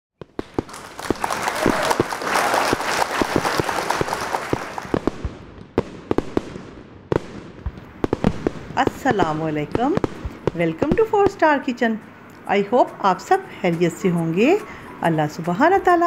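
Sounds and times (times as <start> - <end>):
fireworks crackling and banging: 0.2 - 13.4.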